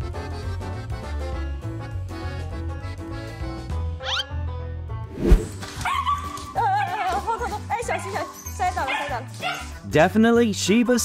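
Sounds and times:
light background music: 0:00.0 - 0:11.0.

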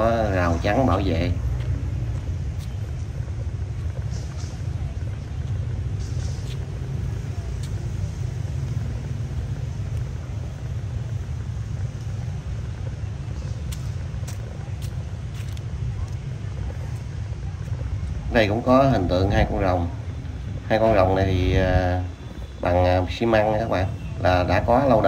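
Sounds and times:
low outdoor rumble: 0:00.0 - 0:25.0.

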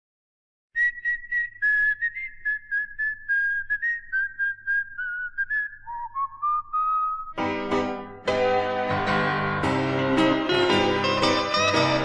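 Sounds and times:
whistled melody: 0:00.8 - 0:07.5.

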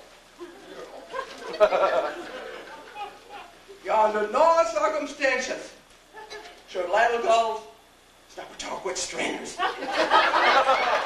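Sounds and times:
audience laughter: 0:00.4 - 0:03.4, 0:09.6 - 0:11.0.

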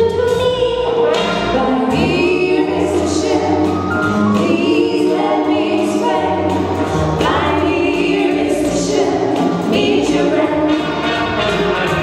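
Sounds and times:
live dance band: 0:00.0 - 0:12.0
walking double bass: 0:00.0 - 0:12.0
female vocal trio singing: 0:01.6 - 0:10.9.

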